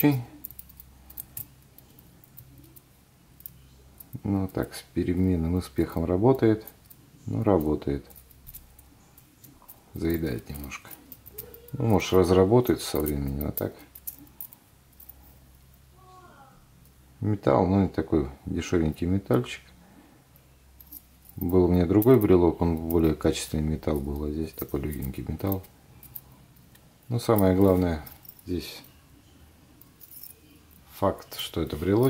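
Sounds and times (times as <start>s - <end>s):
low steady hum: 0.0s - 32.0s.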